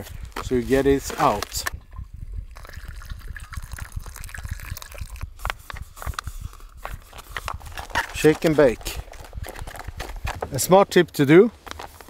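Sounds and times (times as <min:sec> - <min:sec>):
water pouring into pouch: 0:00.9 - 0:06.7
pouch crackling and ticking: 0:03.7 - 0:12.0.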